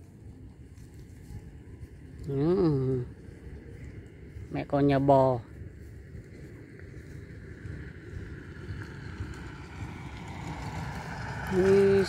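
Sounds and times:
wind rumble on microphone: 0.0s - 12.0s
motor scooter engine: 6.9s - 12.0s.

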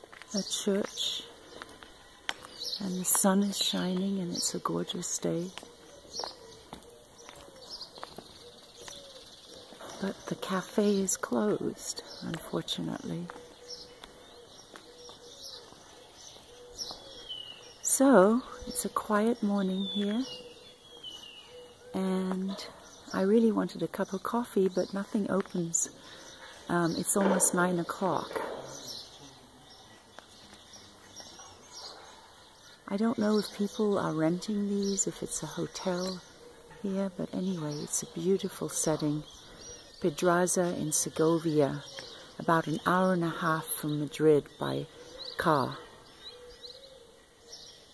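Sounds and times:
footsteps on cobblestones: 0.0s - 11.3s, 12.0s - 17.7s, 23.7s - 31.9s
soft cooing bird calls: 0.0s - 47.9s
bird chirps: 0.2s - 47.9s
faint bird chirps: 11.1s - 23.3s.

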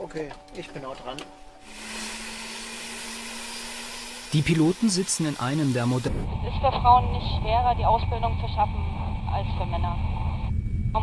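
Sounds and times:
helicopter turbine whine: 1.5s - 11.0s.

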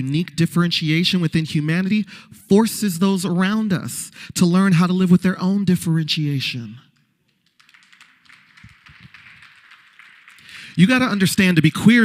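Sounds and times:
faint audience applause: 7.4s - 12.0s.

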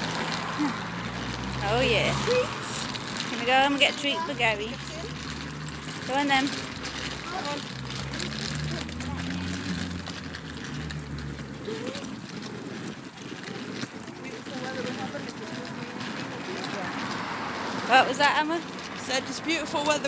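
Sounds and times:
faint voices: 0.0s - 20.0s
street noise: 0.0s - 20.0s
vehicle engine hum: 0.0s - 20.0s.

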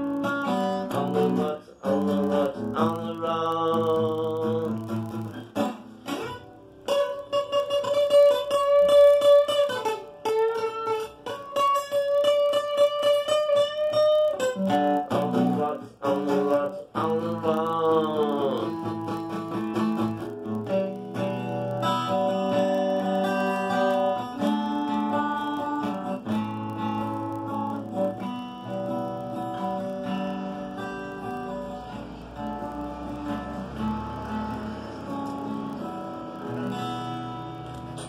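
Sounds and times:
acoustic guitar chords: 0.0s - 38.0s.

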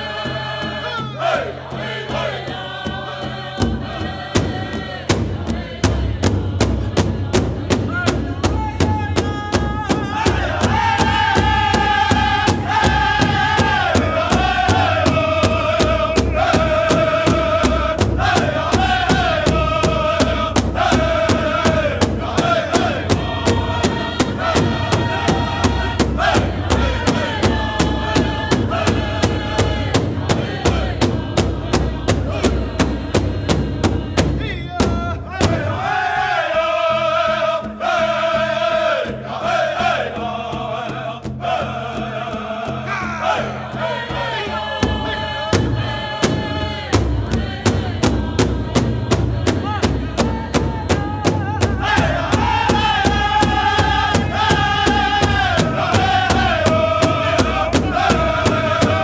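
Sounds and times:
big drum steady beat: 0.0s - 59.0s
group singing in high voices: 0.0s - 59.0s.

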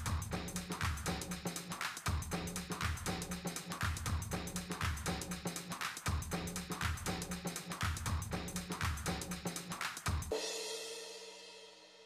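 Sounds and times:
drum and cymbal stroke: 0.0s - 12.0s.

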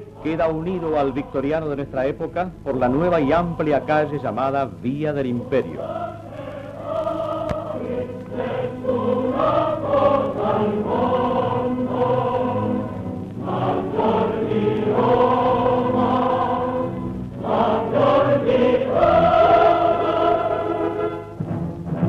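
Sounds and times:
choir singing sustained chords: 0.0s - 22.0s.

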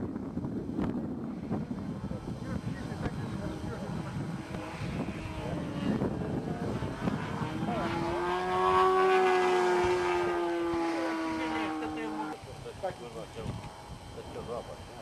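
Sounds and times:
model airplane engine whine: 0.0s - 15.0s.

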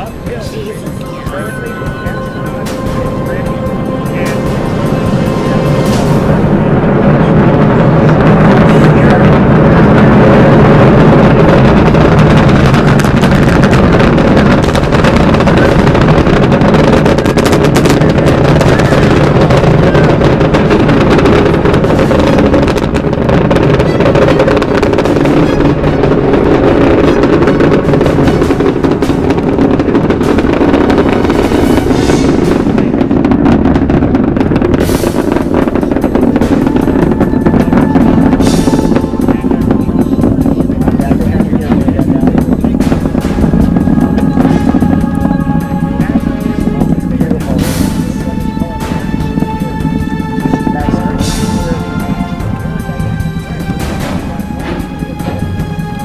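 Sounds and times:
rocket launch roar: 0.0s - 56.0s.

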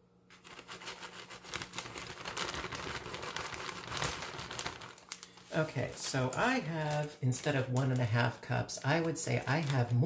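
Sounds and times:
plastic bag crinkling: 0.3s - 10.0s.

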